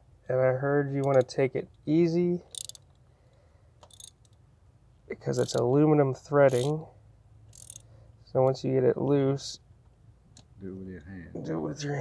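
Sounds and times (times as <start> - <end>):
socket ratchet clicking: 2.5 - 3.0, 3.8 - 4.4, 5.4 - 5.6, 6.5 - 6.8, 7.5 - 7.9.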